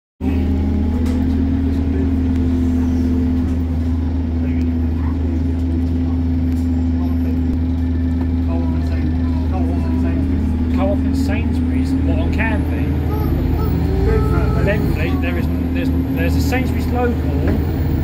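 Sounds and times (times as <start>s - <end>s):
bus engine drone from inside: 0.2s - 18.0s.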